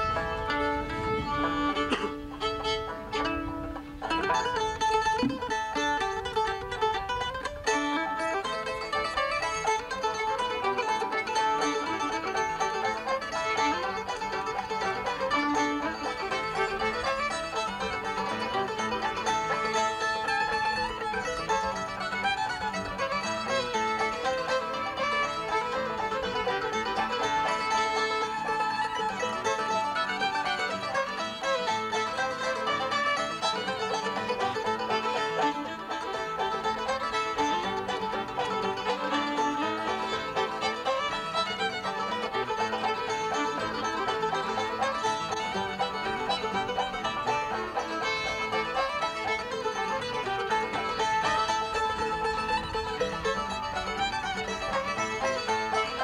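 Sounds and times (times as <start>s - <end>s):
bluegrass string band playing: 0.0s - 56.0s.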